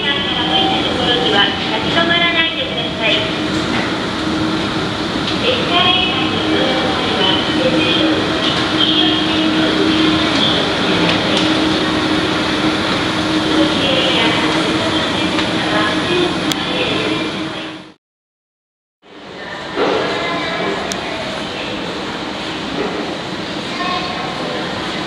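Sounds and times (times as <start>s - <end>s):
escalator mechanical rumble: 0.0s - 18.0s.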